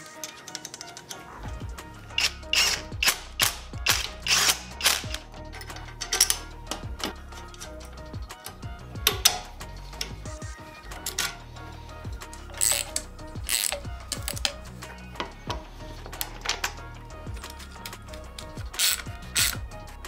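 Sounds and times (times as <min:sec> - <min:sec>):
background music: 0:00.0 - 0:20.0
ratchet wrench clicking: 0:02.1 - 0:10.2, 0:10.9 - 0:11.5, 0:12.3 - 0:15.4, 0:16.0 - 0:19.7
cordless driver spinning bolt: 0:02.2 - 0:10.2, 0:12.3 - 0:14.6, 0:16.1 - 0:19.6.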